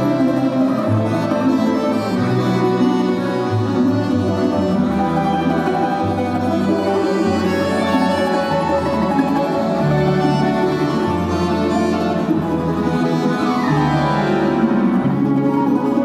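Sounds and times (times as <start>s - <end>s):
folk orchestra playing: 0.0s - 16.0s.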